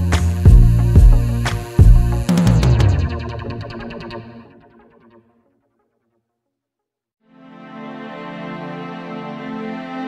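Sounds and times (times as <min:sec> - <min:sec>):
background music: 0:00.0 - 0:05.2, 0:07.2 - 0:10.0.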